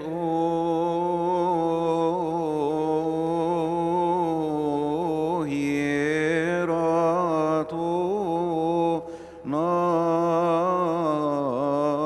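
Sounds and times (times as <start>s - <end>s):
man chanting a hymn: 0.0s - 12.0s.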